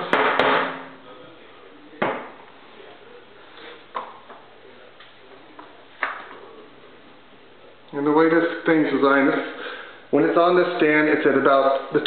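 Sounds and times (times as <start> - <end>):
paper stack knocking on metal: 0.0 - 0.8.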